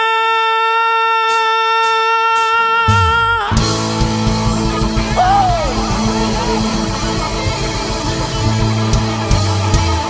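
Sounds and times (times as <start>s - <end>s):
man singing long high note: 4.5s - 7.9s.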